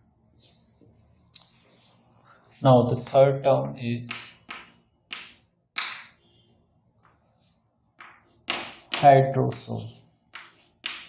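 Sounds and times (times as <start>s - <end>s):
chalk scraping on chalkboard: 7.3s - 11.0s.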